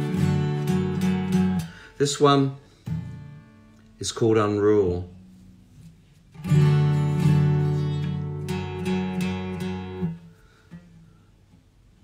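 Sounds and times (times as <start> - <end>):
acoustic guitar strumming: 0.0 - 11.7.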